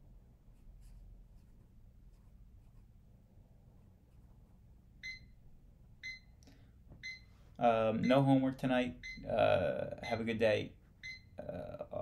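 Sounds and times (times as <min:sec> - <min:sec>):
electronic alarm beeping: 0:05.0 - 0:05.4, 0:06.0 - 0:06.3, 0:07.0 - 0:07.3, 0:09.0 - 0:09.4, 0:11.0 - 0:11.4.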